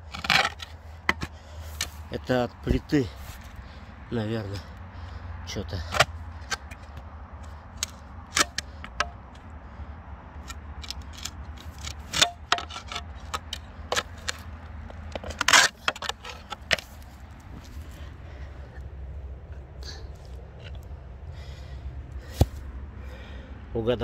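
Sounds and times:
spade scraping and knocking: 0.0 - 2.0, 2.6 - 3.6, 7.4 - 9.4, 10.4 - 18.1.

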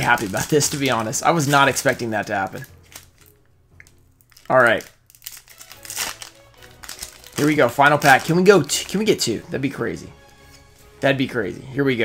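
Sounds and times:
foil wrapper crinkling and tearing: 0.0 - 9.3.

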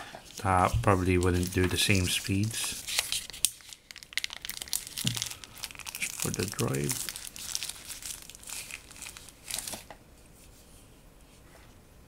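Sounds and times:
plastic wrapper crinkling: 0.2 - 10.0.

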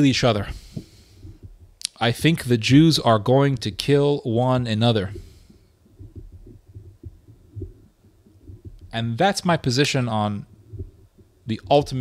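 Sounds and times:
muffled low thumps and rumble: 0.0 - 12.0.

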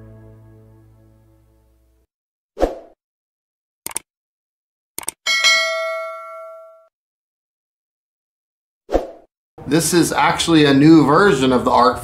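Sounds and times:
quick clicks: 3.8 - 4.1, 5.0 - 5.2
notification bell chime: 5.3 - 6.9.

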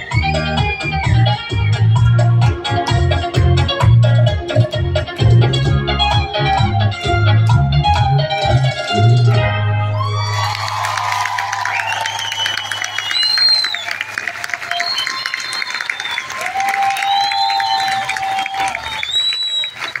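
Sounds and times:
shouts and whistles: 0.0 - 1.9, 10.0 - 20.0
audience applauding and cheering: 0.0 - 2.1, 9.8 - 20.0
bachata song: 0.0 - 11.8.

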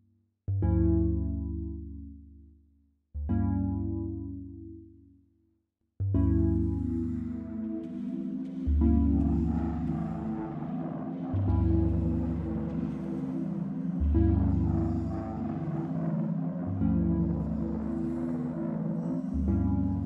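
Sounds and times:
slow soundtrack music: 0.6 - 2.4, 3.3 - 4.9, 6.0 - 20.0.

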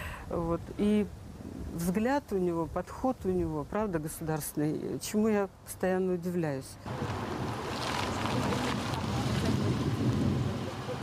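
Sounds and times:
wind buffeting microphone: 0.4 - 4.0, 6.9 - 11.0
car engine and tyre noise: 6.9 - 11.0.

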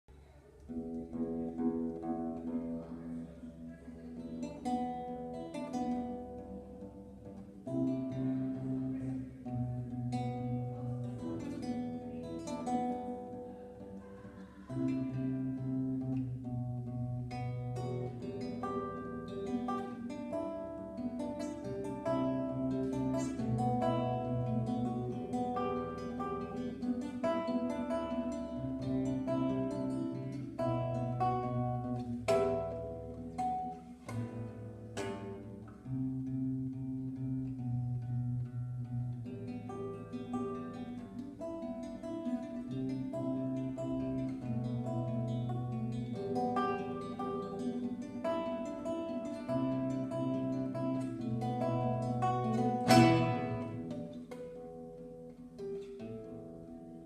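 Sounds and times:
classical guitar fingerstyle: 0.1 - 57.0.

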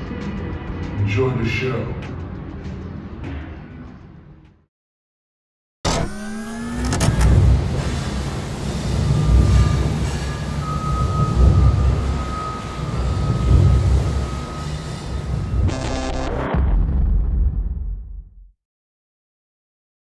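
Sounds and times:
low mechanical rumble: 5.9 - 17.5.

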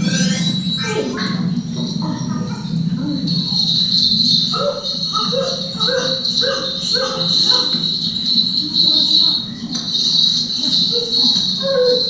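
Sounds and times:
insect drone: 0.0 - 12.0.

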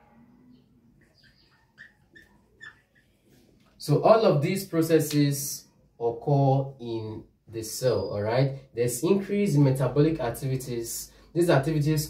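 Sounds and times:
marker squeaking on whiteboard: 0.0 - 3.8.

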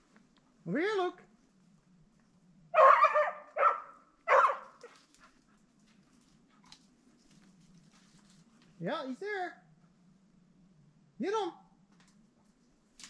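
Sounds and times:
dog barking: 2.8 - 5.0.

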